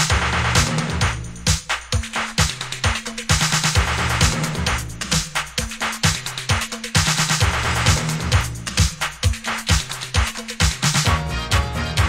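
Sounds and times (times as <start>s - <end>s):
pulsing bassline: 0.0s - 1.6s, 3.8s - 5.2s, 7.4s - 9.0s, 11.0s - 12.0s
bright hi-hats: 0.0s - 12.0s
kick drum: 0.0s - 12.0s.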